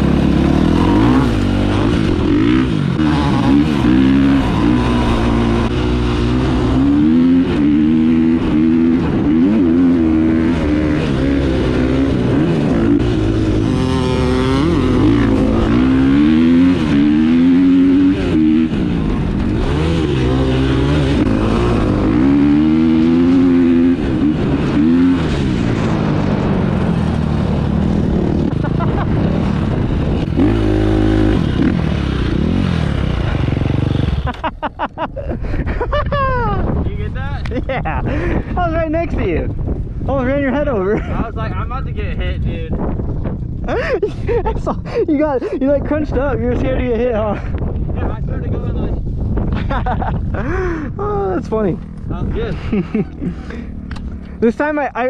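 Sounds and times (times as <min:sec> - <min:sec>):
dirt bike engine revving: 0:00.0 - 0:34.7.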